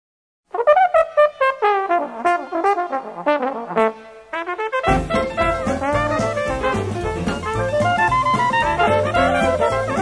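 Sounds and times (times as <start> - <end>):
dixieland jazz horns: 0.5 - 10.0.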